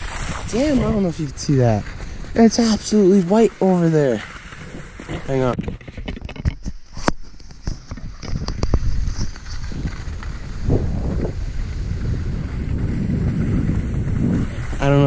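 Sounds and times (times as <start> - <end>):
skis sliding over snow: 0.0 - 15.0
wind buffeting microphone: 0.0 - 15.0.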